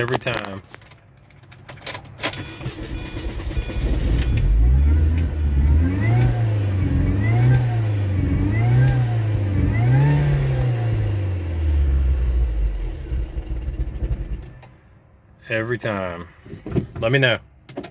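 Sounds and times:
car engine revving and stalling: 2.2s - 14.6s.

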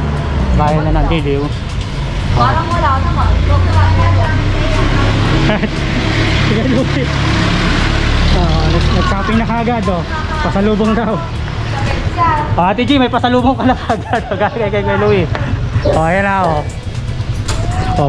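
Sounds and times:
vehicle engine humming: 0.0s - 18.0s
people talking: 2.4s - 5.7s, 6.4s - 7.1s, 8.3s - 16.8s.

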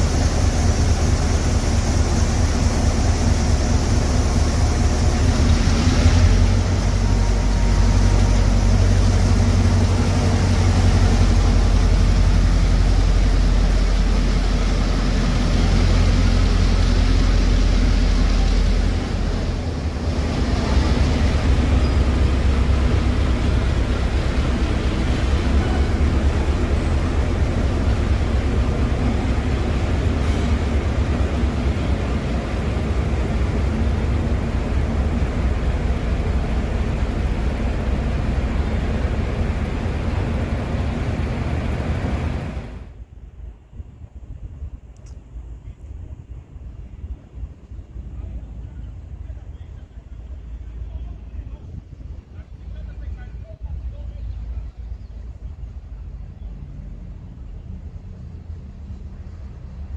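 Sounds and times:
diesel locomotive engine rumble: 0.0s - 59.9s.

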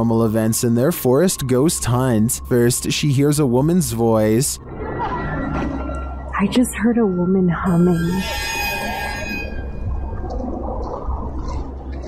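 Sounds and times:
low steady rumbling: 0.0s - 12.0s.

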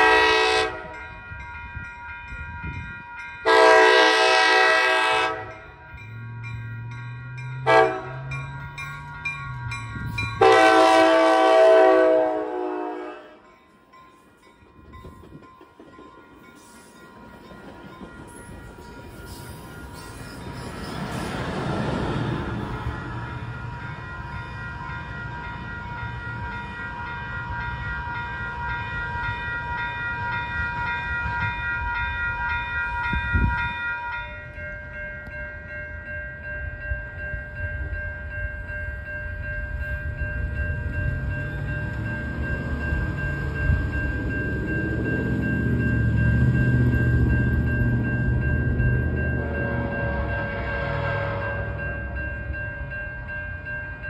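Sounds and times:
train rumbling: 0.0s - 54.0s.

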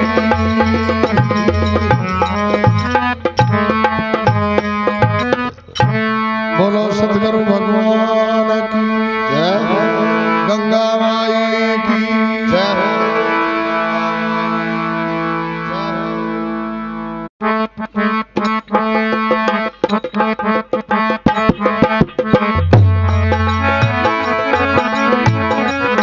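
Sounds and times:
fast percussion rhythm: 0.0s - 6.1s, 18.4s - 26.0s
harmonium playing over drone: 0.0s - 26.0s.

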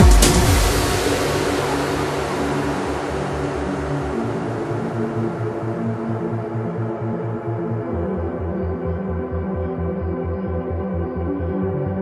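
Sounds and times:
high noisy wash: 0.0s - 7.9s
pulsing low synth line: 0.0s - 12.0s.

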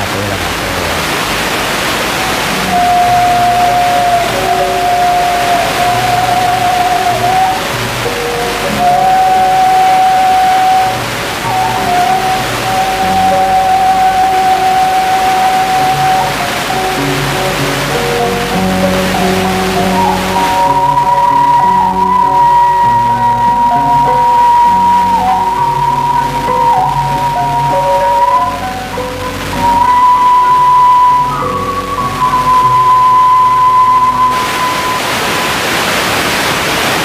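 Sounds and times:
steady rushing hiss: 0.0s - 37.0s
slow instrumental music: 2.2s - 35.5s.

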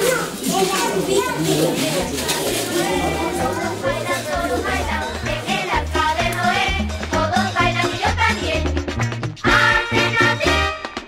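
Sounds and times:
adults and children talking: 0.0s - 8.5s.

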